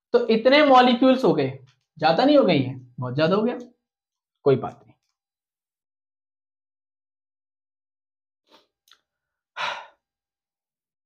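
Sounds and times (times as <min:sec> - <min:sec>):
man sighing: 0:09.6 - 0:10.0.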